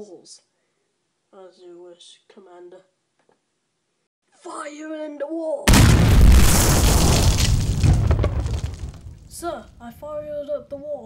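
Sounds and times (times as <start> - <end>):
explosion boom with deep rumble: 5.7 - 9.8.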